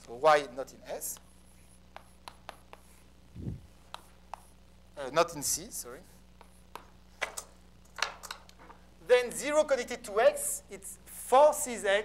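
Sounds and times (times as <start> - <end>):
chalk tapping and scratching: 0.9 - 3.1, 3.8 - 4.6, 6.0 - 7.0.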